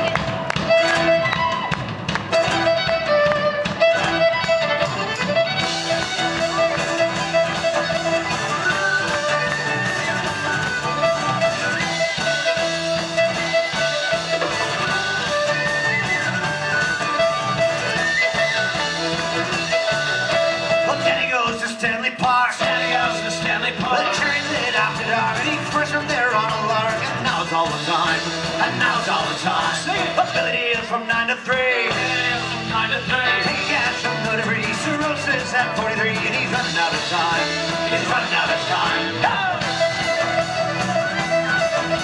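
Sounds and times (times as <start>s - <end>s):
banjo: 0.0s - 42.0s
electric bass guitar: 0.0s - 42.0s
fiddle melody: 0.0s - 42.0s.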